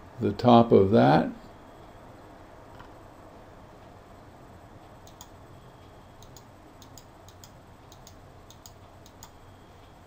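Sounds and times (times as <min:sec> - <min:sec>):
computer mouse clicks: 0:05.0 - 0:05.4, 0:06.2 - 0:09.4.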